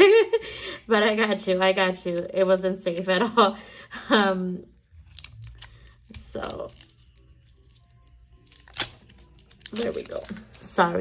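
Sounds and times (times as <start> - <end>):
faint background music: 0.0 - 11.0
tape tearing from roll: 5.0 - 10.6.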